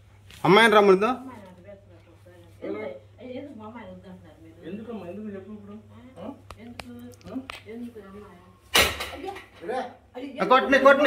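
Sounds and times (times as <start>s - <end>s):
sharp knock or bang: 8.7s - 9.2s.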